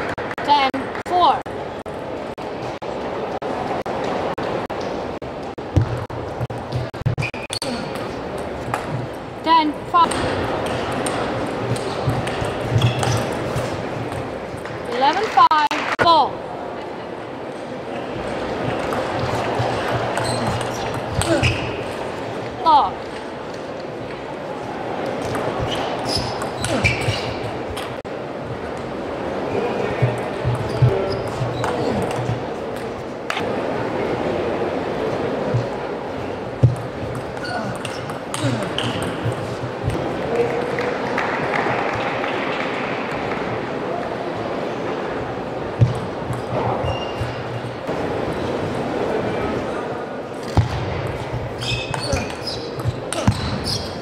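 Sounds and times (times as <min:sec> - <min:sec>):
crowd chatter: 0:00.0 - 0:54.0.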